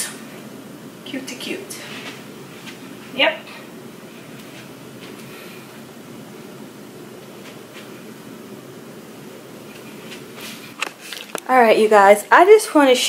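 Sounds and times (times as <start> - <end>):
ventilation hum: 0.0 - 13.0.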